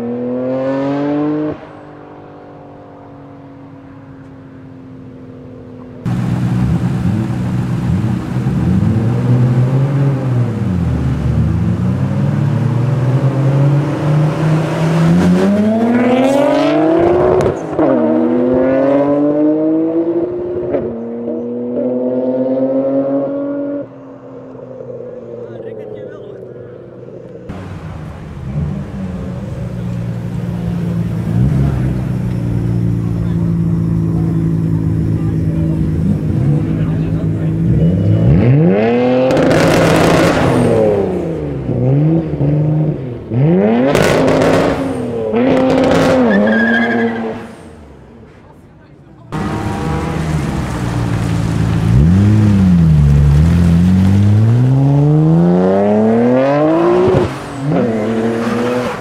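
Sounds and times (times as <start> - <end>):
car engine idling and revving: 0.0 - 59.0
car engines accelerating hard: 0.0 - 59.0.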